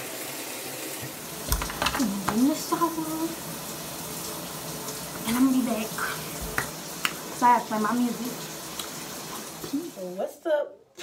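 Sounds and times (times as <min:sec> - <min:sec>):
water running from a tap: 0:00.0 - 0:10.4.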